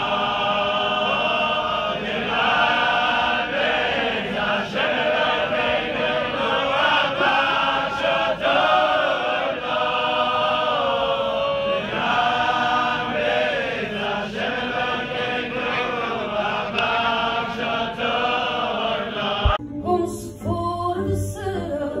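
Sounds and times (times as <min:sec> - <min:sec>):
men singing unaccompanied: 0:00.0 - 0:19.6.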